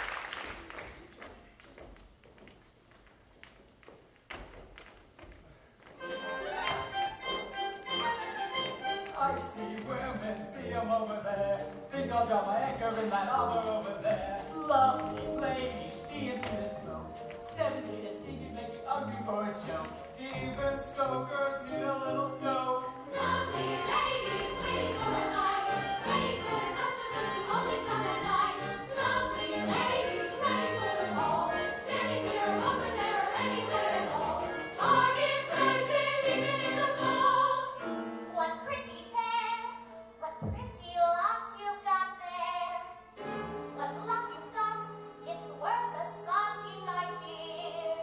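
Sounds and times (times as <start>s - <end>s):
orchestra playing held chords: 6.0s - 9.7s, 23.1s - 38.2s
instrumental accompaniment: 6.0s - 10.4s, 12.8s - 39.0s
choir and soloists singing: 8.0s - 38.2s.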